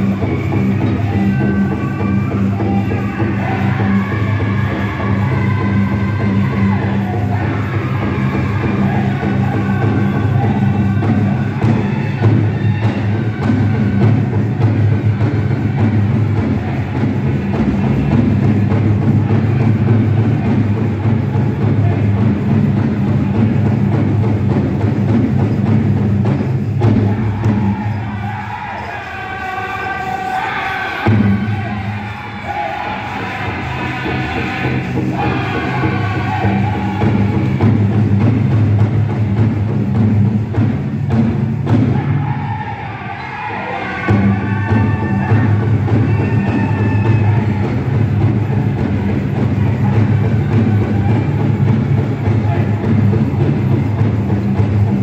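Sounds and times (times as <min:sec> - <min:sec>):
chorus of singing voices: 0:00.0 - 0:24.1, 0:26.8 - 0:39.6, 0:41.8 - 0:54.8
big drum beaten steadily: 0:00.0 - 0:28.5, 0:31.0 - 0:42.6, 0:44.0 - 0:55.0.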